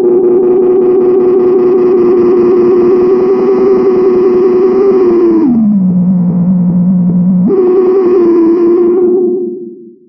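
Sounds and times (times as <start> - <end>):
buzzy feedback drone: 0.0 - 10.0.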